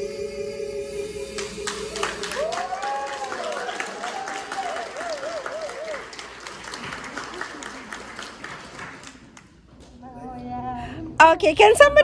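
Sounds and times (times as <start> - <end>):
audience applause: 1.6 - 9.5.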